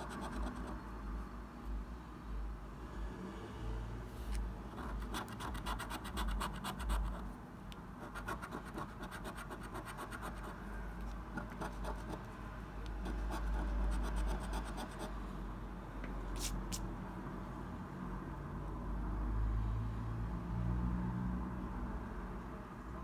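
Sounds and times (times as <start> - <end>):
coin scratching scratch card: 0.0 - 0.8, 4.7 - 7.3, 8.0 - 10.6, 11.4 - 12.2, 13.0 - 15.1.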